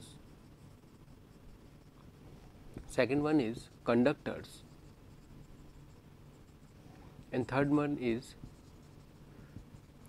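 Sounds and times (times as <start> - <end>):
marker writing on whiteboard: 2.8 - 10.0.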